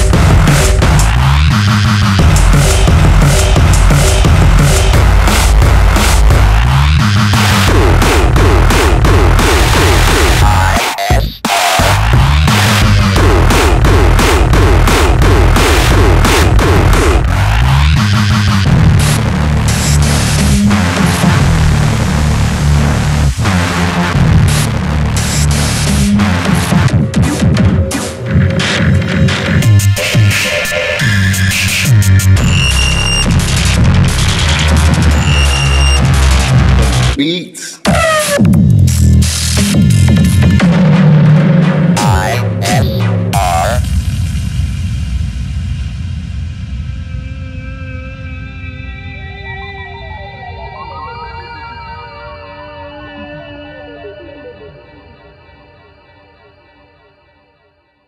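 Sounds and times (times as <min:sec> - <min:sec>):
hard electronic music: 0:00.0 - 0:46.2
heavy stepping bassline: 0:00.0 - 0:46.9.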